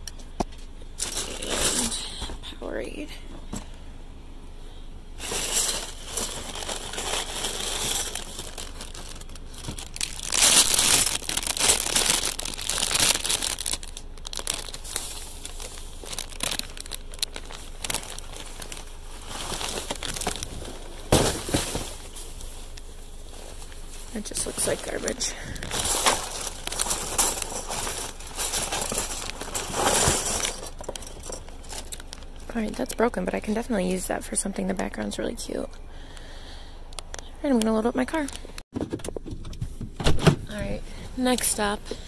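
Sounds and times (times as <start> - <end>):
plastic bags and cardboard rustling: 0.2 - 2.5, 5.2 - 33.7
sharp crackle: 5.2 - 24.6.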